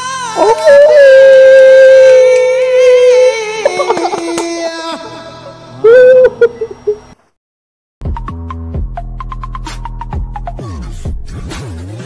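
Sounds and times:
man singing long loud note: 0:00.0 - 0:05.9.

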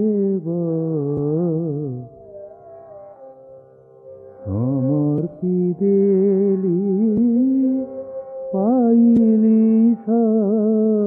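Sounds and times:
instrument holding steady note: 0:00.0 - 0:11.0
man singing devotional song: 0:04.5 - 0:08.0, 0:08.6 - 0:11.0.

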